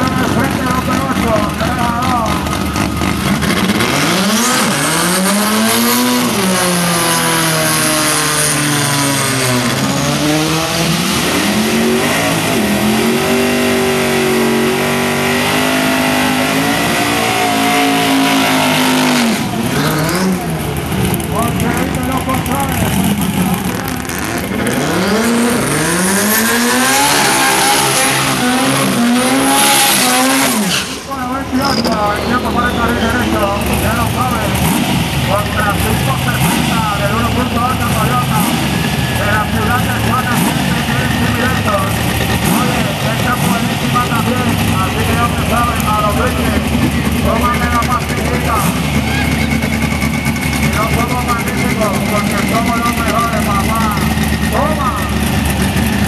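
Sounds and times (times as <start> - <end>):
car engine revving hard: 0.0 - 56.0.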